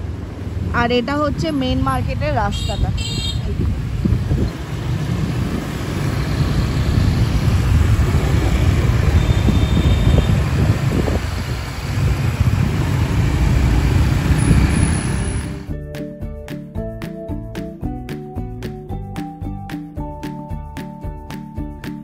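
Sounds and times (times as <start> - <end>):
other scooters: 0.0 - 15.7
road noise: 0.0 - 15.8
wind buffeting microphone: 0.5 - 15.6
scooter engine: 2.6 - 15.7.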